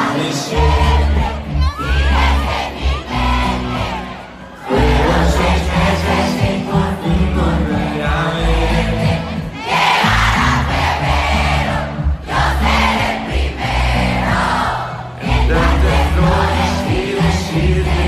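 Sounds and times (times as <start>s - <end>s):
crowd singing along: 0.0s - 18.0s
live pop music with bass: 0.0s - 18.0s.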